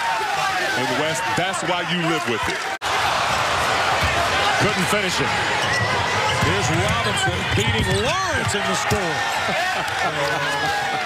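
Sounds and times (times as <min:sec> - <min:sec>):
arena crowd noise: 0:00.0 - 0:11.0
basketball bouncing on court: 0:05.6 - 0:09.0.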